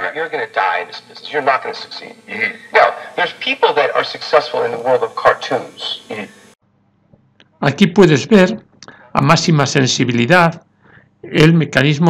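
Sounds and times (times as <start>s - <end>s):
radio voice through loudspeaker: 0.0s - 6.4s
faint steady hum: 0.0s - 11.8s.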